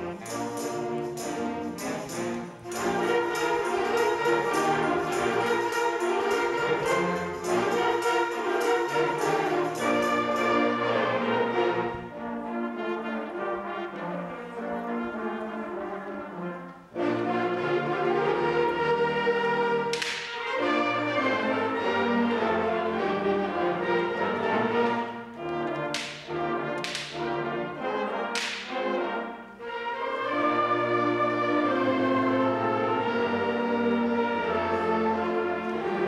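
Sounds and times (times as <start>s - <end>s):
sustained brass chords: 0.0s - 36.0s
sharp percussion hits: 25.9s - 27.4s, 28.4s - 28.9s.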